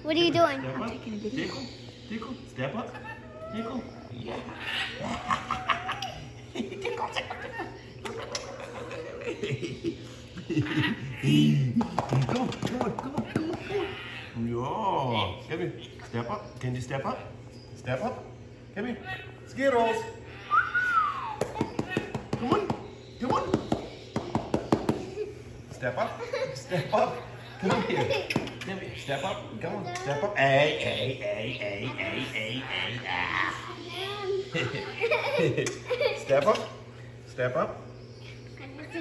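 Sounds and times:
indistinct voices: 0.0s - 37.2s
laughter: 4.6s - 11.2s, 26.0s - 28.8s, 34.5s - 36.7s.

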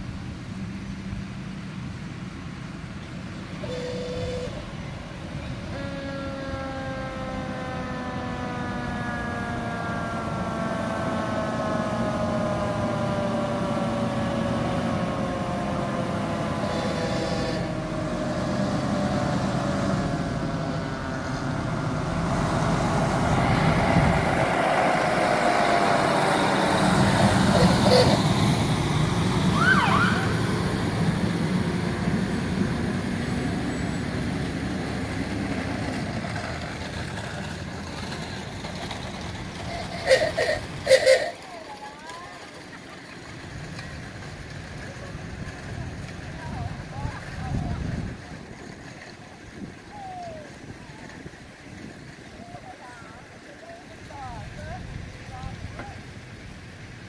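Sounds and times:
fire engine rumble: 0.0s - 57.0s
fire engine siren winding down: 5.5s - 35.0s.

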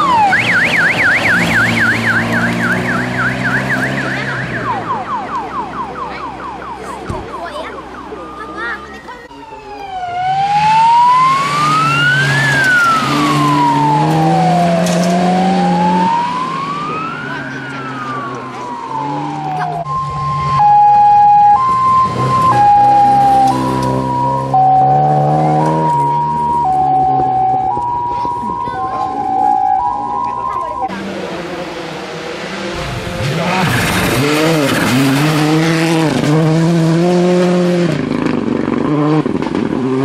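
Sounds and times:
two-tone hi-lo siren: 0.0s - 31.0s
wailing siren: 0.0s - 36.3s
car engines running: 0.0s - 40.0s.

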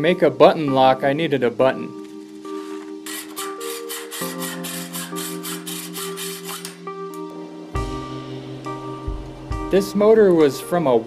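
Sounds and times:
background music with chords: 0.0s - 11.0s
metal rubbing on sandpaper: 2.6s - 6.8s.

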